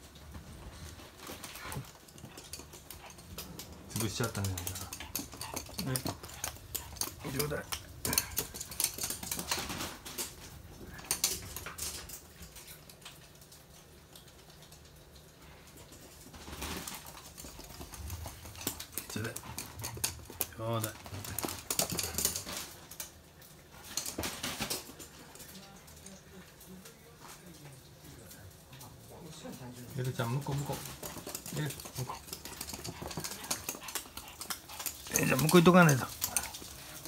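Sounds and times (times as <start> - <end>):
dog claws clicking on wooden floor: 0.6 - 26.0, 30.0 - 37.0.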